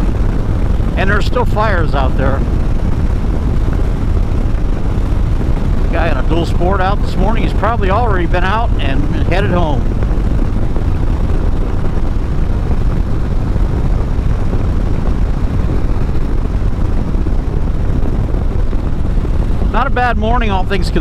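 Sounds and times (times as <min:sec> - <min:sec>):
wind and road noise: 0:00.0 - 0:21.0.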